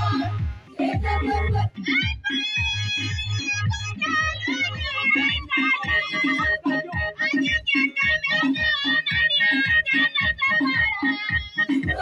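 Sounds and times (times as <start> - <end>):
women's choir singing: 0.0 - 1.8, 11.7 - 12.0
steady low beat: 0.0 - 8.3
lead voice through loudspeaker: 2.0 - 8.4.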